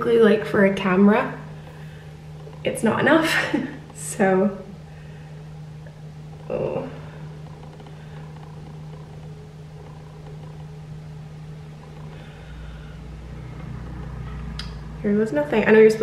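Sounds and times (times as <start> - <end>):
deeper rumble: 0.0 - 16.0
low machine hum: 0.0 - 16.0.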